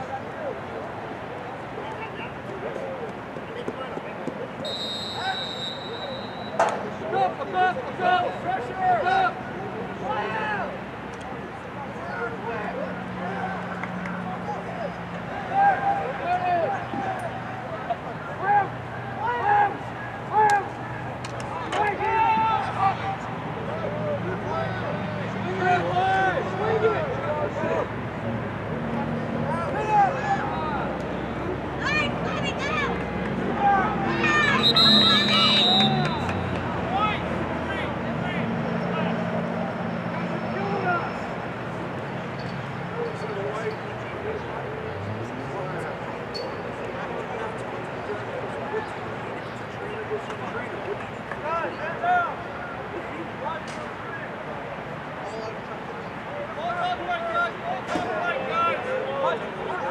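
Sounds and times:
players shouting and calling: 0:00.0 - 0:59.9.

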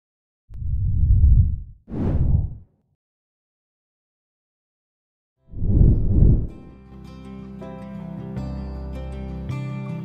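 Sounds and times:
deep rumbling swell: 0:05.6 - 0:06.7.

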